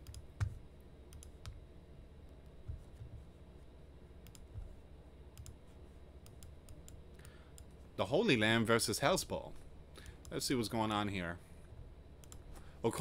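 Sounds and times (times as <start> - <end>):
computer mouse clicks: 0.0 - 1.6, 4.2 - 4.7, 5.3 - 5.6, 6.2 - 7.8, 12.2 - 12.6.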